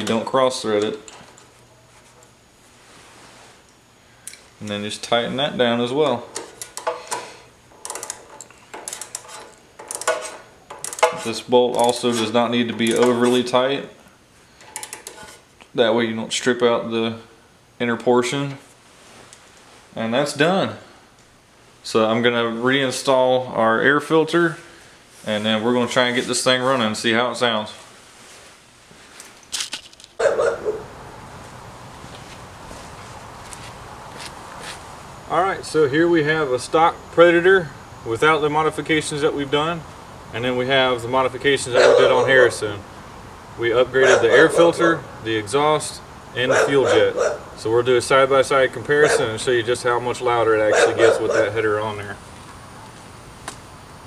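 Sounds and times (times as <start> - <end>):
outdoor background noise: 0.0 - 54.0
ratchet clicking: 7.8 - 12.0.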